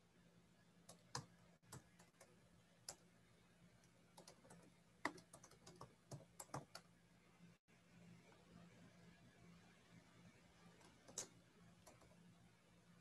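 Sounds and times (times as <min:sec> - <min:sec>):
faint steady hum: 0:00.0 - 0:13.0
typing on computer keyboard: 0:00.9 - 0:03.1, 0:04.1 - 0:06.9, 0:10.8 - 0:12.2.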